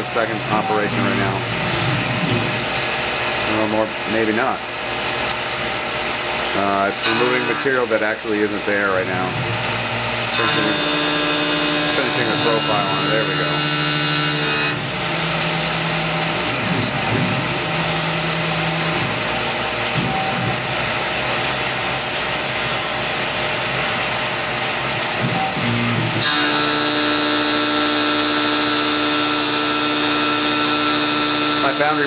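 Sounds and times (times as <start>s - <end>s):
machine whine of held tones: 0.0s - 1.4s, 10.0s - 20.6s, 25.3s - 32.0s
milling machine cutting metal: 0.0s - 32.0s.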